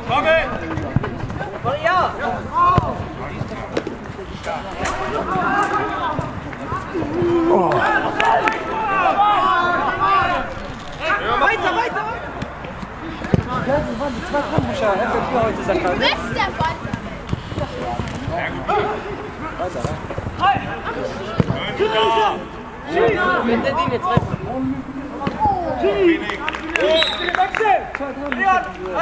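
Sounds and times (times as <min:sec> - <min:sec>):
voices calling: 0:00.0 - 0:29.0
men calling out: 0:04.5 - 0:12.3.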